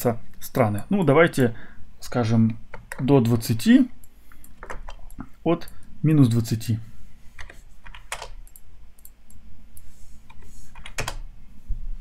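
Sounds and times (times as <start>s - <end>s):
computer keyboard keystrokes: 7.4s - 9.4s, 10.2s - 11.2s.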